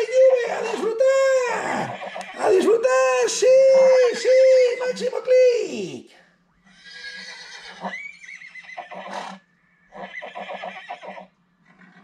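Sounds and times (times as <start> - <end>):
horse whinnying: 0.3 - 2.6, 6.7 - 12.0.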